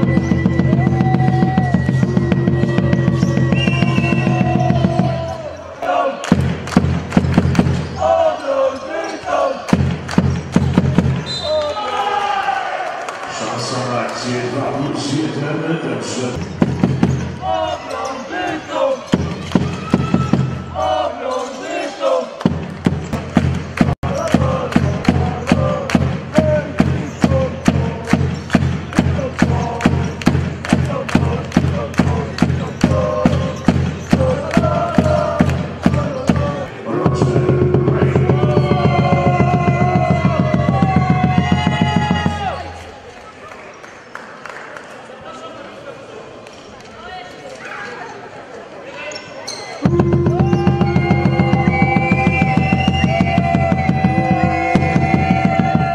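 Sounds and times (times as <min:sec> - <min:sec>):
fast beat music with bass: 0:00.0 - 0:05.2, 0:22.5 - 0:42.5, 0:49.9 - 0:55.9.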